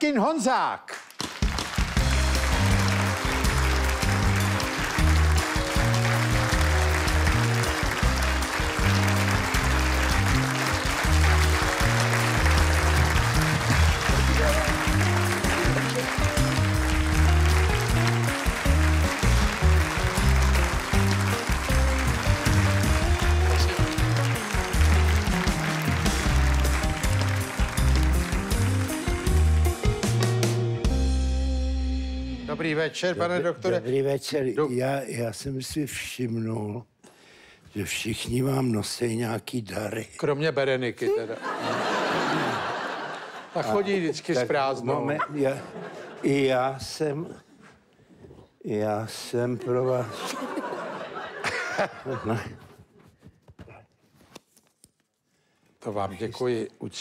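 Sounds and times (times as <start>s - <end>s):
audience applause: 1.0s - 30.5s, 41.4s - 43.9s
live band playing upbeat music: 1.4s - 32.5s.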